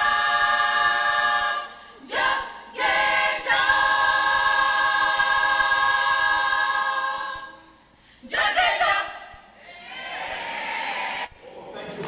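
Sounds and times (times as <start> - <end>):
choir singing a cappella: 0.0 - 11.8.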